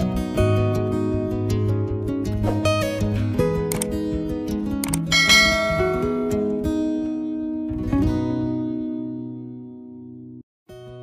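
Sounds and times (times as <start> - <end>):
strummed acoustic guitar music: 0.0 - 11.0
bell-like chime: 5.1 - 6.4.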